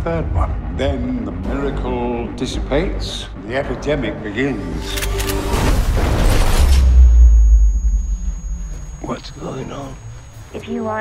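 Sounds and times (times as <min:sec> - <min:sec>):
thin steady high tone: 0:06.8 - 0:11.0.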